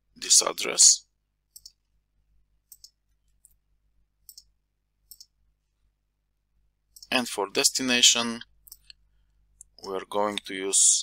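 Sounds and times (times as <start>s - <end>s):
computer mouse clicks: 1.5s - 1.8s, 2.7s - 3.6s, 4.2s - 5.4s.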